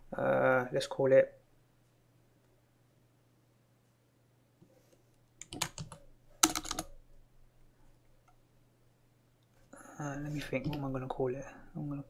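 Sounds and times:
typing on computer keyboard: 0:05.4 - 0:06.9.

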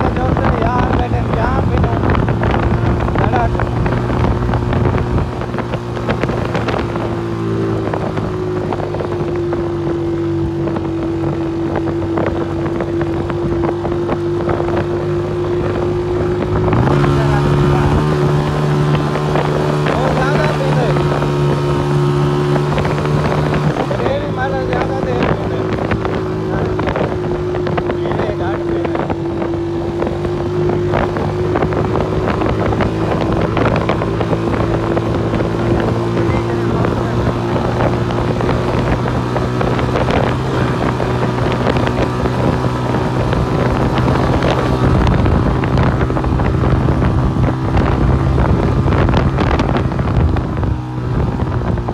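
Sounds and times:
motorcycle engine running: 0:00.0 - 0:51.9
wind buffeting microphone: 0:00.0 - 0:51.9.

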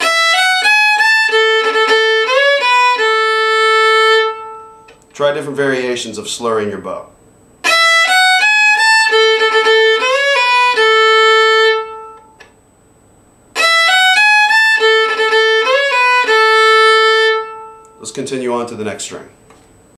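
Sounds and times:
solo fiddle playing a reel: 0:00.0 - 0:04.9, 0:07.6 - 0:12.4, 0:13.6 - 0:18.0.

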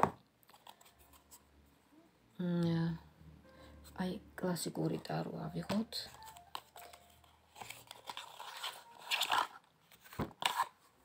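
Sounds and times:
cards being shuffled: 0:00.4 - 0:01.4, 0:05.6 - 0:10.9.

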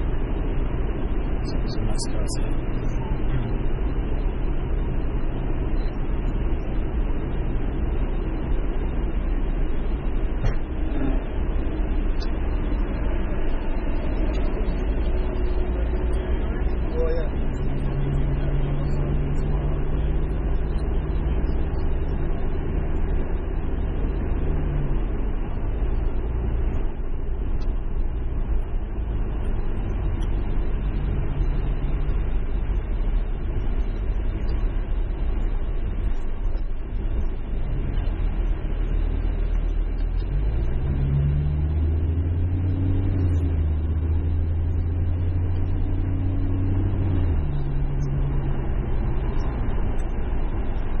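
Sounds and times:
car engine: 0:00.0 - 0:51.0
road noise: 0:00.0 - 0:51.0.

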